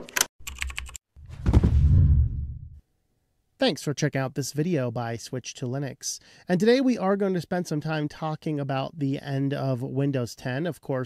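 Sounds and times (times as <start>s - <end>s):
deep loud whoosh: 1.4s - 2.8s.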